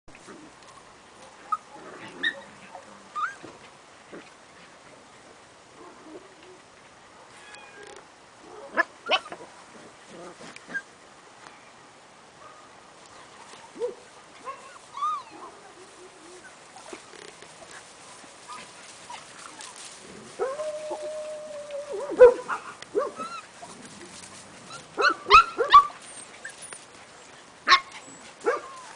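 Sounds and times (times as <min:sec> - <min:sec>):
puppies yipping and whimpering: 0:01.4 - 0:03.5, 0:14.5 - 0:17.3, 0:18.4 - 0:28.9.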